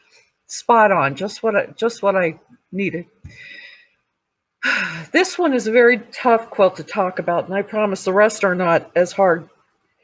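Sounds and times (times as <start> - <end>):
woman speaking: 0.5 - 3.7, 4.6 - 9.4.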